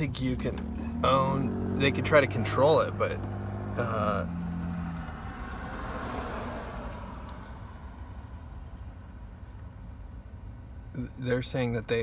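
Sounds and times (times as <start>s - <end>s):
low rumble of vehicle noise: 0.0s - 12.0s.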